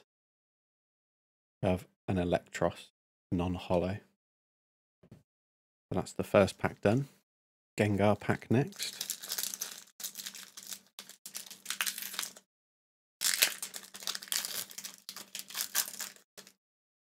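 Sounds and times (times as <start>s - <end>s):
foil wrapper crinkling and tearing: 8.8s - 12.5s, 13.2s - 16.6s.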